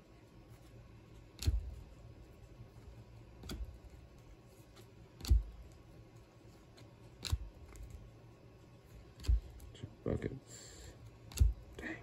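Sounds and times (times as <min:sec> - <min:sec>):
trading cards snapping: 0:01.3 - 0:01.8, 0:05.2 - 0:05.8, 0:06.8 - 0:08.0, 0:09.1 - 0:09.7, 0:11.2 - 0:11.8.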